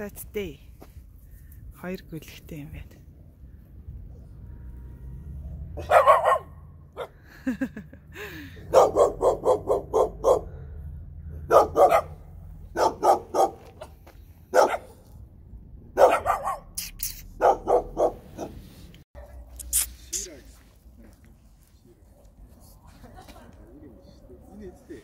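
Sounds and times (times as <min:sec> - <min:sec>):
dog barking: 0:05.8 - 0:07.2, 0:08.6 - 0:10.7, 0:11.4 - 0:13.9, 0:14.5 - 0:15.0, 0:16.0 - 0:16.7, 0:17.4 - 0:18.6.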